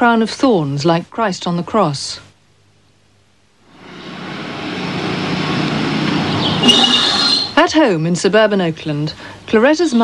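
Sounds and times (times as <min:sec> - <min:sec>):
road traffic: 0:03.7 - 0:07.6
short high thin tones: 0:06.5 - 0:07.6.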